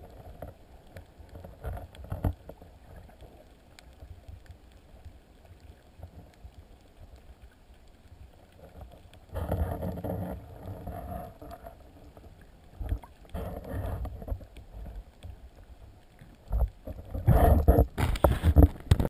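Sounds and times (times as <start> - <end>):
water sloshing and splashing: 0.0 - 19.0
muffled underwater swishing: 5.1 - 19.0.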